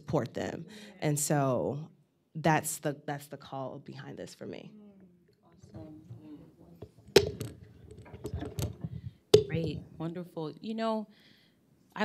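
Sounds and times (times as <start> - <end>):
microphone bumps and rustling: 5.7 - 10.0
microphone handling knock: 6.0 - 10.0.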